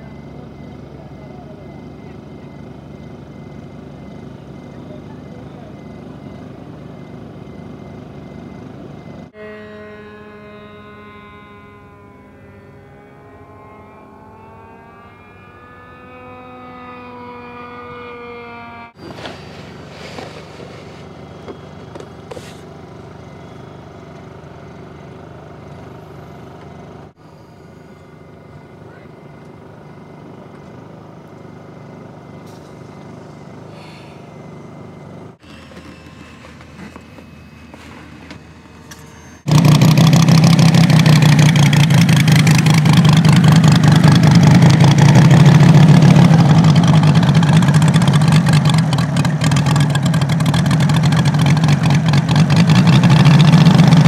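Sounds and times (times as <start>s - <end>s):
droning engine: 0.0s - 54.0s
steady rumble: 28.3s - 49.0s.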